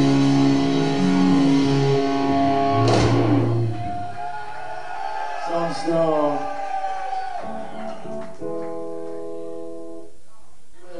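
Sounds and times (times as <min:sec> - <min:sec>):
distorted electric guitar: 0:00.0 - 0:03.9
bass guitar low notes: 0:00.0 - 0:04.0.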